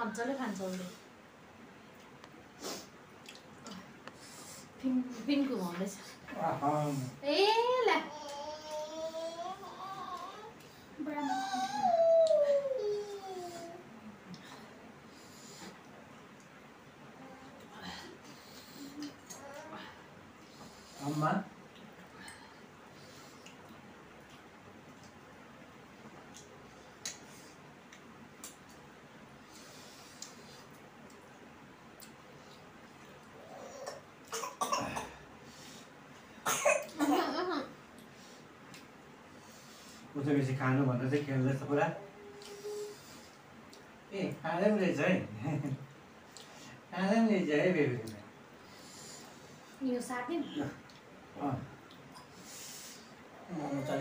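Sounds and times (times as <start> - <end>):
person coughing: 34.4 - 35.2.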